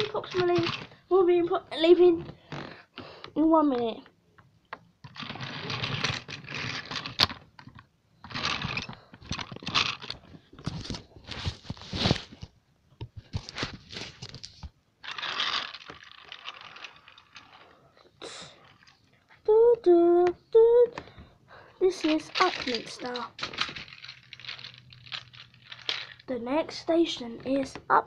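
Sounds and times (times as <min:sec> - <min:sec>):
rustling and scraping of toy trains: 0:00.0 - 0:02.9, 0:05.0 - 0:12.5, 0:13.1 - 0:19.5, 0:21.8 - 0:28.0.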